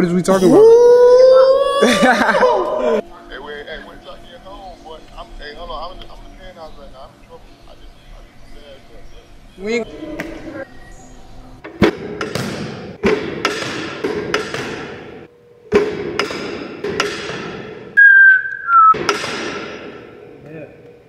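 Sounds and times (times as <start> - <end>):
steady machine hum: 2.4 - 13.0
whistle-like tone: 18.0 - 19.0.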